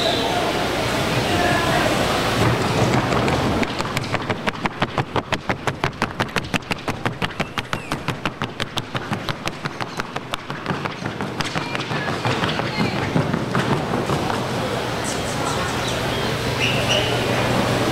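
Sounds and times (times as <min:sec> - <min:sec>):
arena noise: 0:00.0 - 0:17.9
hooves striking wooden board: 0:02.4 - 0:14.5.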